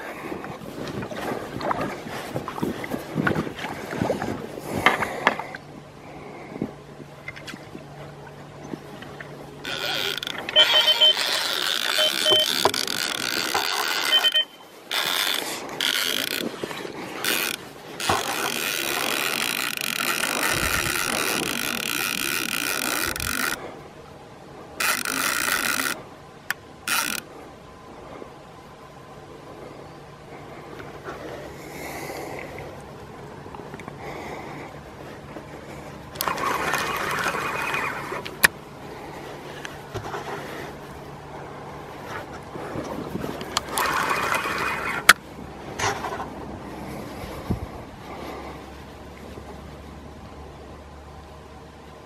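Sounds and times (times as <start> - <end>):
fishing reel drag buzzing: 9.6 - 16.5, 17.2 - 23.6, 24.8 - 26.0, 26.9 - 27.2, 36.2 - 38.3, 43.6 - 45.1.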